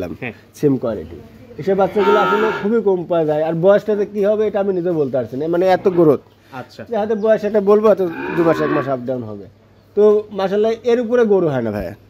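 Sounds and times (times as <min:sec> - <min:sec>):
man talking: 0:00.0 - 0:12.0
calf mooing: 0:01.7 - 0:02.8, 0:08.0 - 0:09.0.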